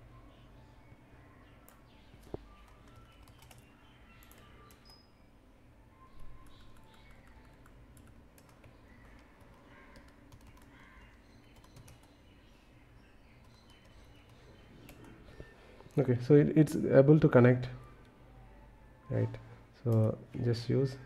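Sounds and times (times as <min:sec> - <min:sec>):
computer keyboard typing: 0:01.7 - 0:05.0, 0:06.2 - 0:12.2, 0:13.4 - 0:15.4.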